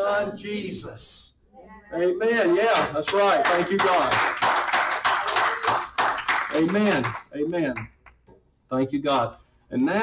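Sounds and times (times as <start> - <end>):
hand clapping: 2.7 - 8.2.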